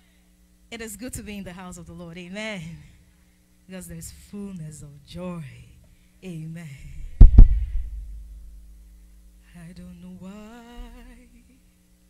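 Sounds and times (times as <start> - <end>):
heavy low thumps: 7.0 - 8.9
low boom: 7.1 - 8.7.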